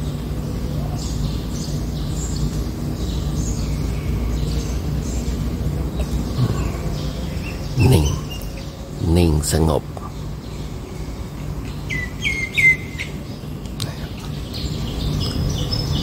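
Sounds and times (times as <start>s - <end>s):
small birds chirping: 0.0s - 16.0s
steady low hum: 0.0s - 16.0s.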